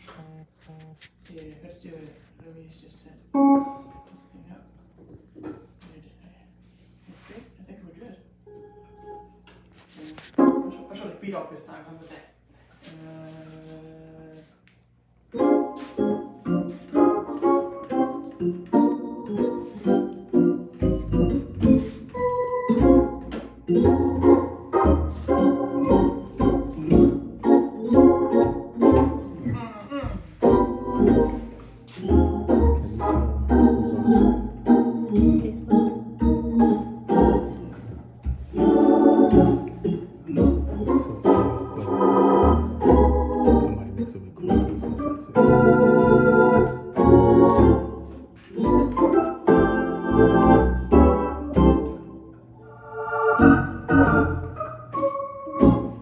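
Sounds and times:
organ playing jazz: 0:03.3 - 0:04.2, 0:08.4 - 0:11.5, 0:15.2 - 0:29.6, 0:30.2 - 0:56.0.

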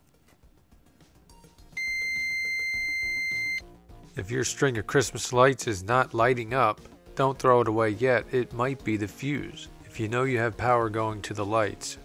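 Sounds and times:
multimeter continuity beep: 0:01.8 - 0:03.6.

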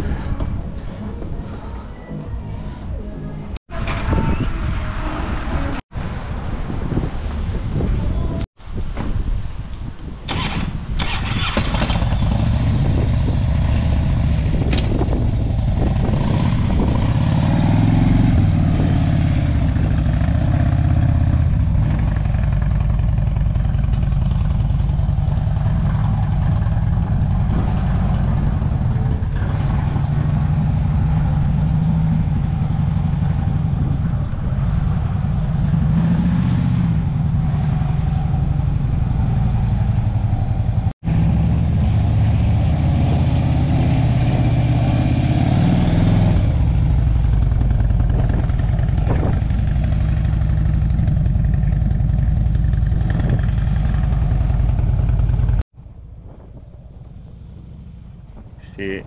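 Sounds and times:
motorcycle engine running: 0:11.4 - 0:35.9, 0:46.5 - 0:55.6.

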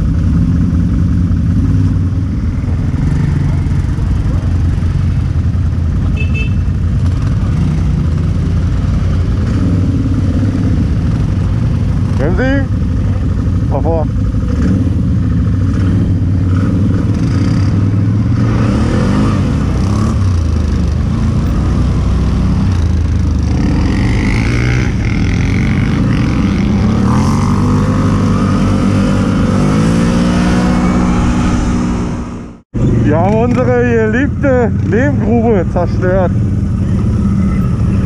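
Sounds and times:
quad bike engines accelerating: 0:00.0 - 0:38.0.

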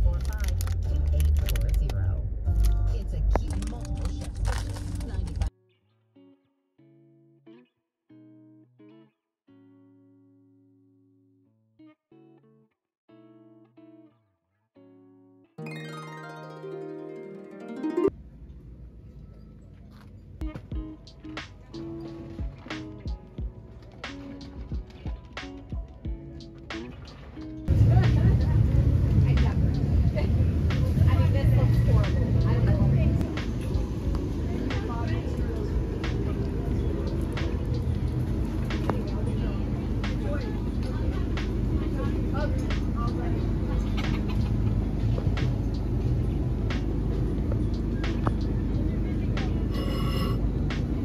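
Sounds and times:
background music: 0:00.0 - 0:05.5, 0:15.6 - 0:18.2
low outdoor rumble: 0:00.0 - 0:05.5, 0:27.2 - 0:51.0
faint voices: 0:20.9 - 0:51.0.

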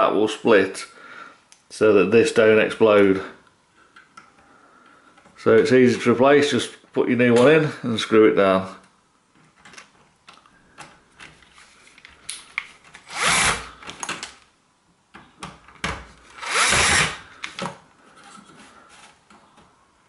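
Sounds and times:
cordless drill driving screw: 0:13.0 - 0:13.7, 0:16.3 - 0:17.2.

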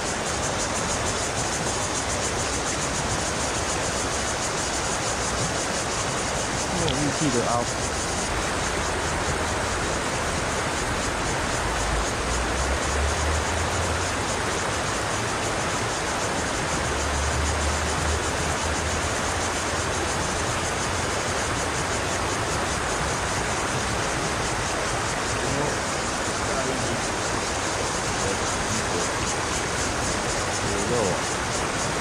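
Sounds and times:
river rushing over stones: 0:00.0 - 0:32.0.

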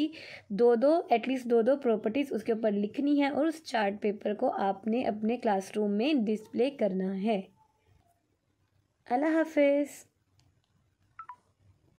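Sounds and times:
short electronic beeps: 0:11.2 - 0:11.5.

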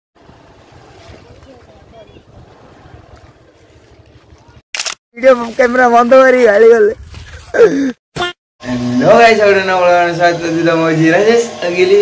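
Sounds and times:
wind buffeting microphone: 0:00.2 - 0:04.6, 0:05.9 - 0:07.5.

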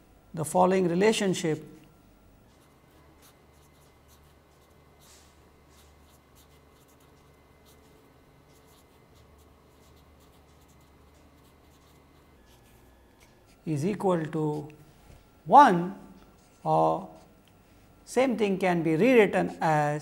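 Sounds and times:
low steady hum: 0:00.0 - 0:20.0
marker writing on paper: 0:02.5 - 0:14.8, 0:16.2 - 0:17.4.

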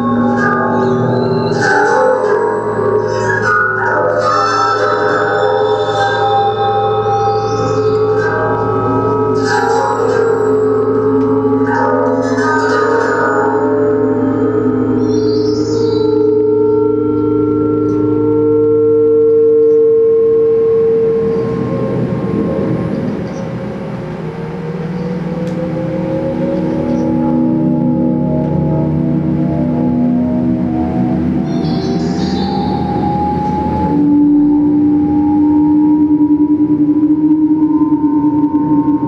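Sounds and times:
electronic drone music: 0:00.0 - 0:39.0.

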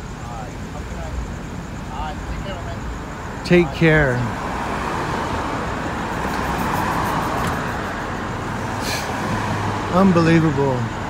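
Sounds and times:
cars driving past: 0:00.0 - 0:11.0.

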